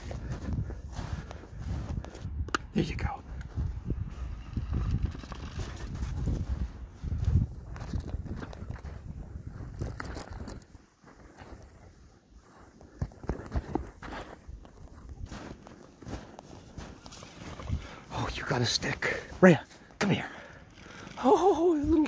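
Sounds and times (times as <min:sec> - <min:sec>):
footsteps in snow: 0:00.0 - 0:22.0.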